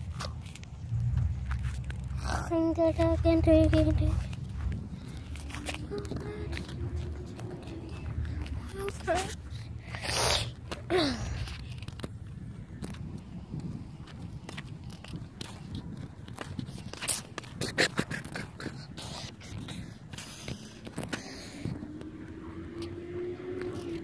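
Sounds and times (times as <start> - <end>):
wind rumble: 0.0 - 24.0.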